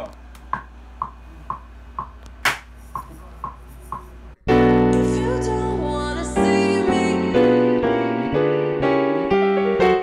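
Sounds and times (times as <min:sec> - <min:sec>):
piano jazz chord: 0:04.5 - 0:10.0.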